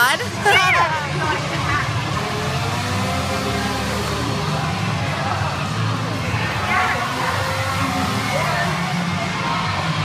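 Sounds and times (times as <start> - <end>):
low crowd rumble: 0.0 - 10.0.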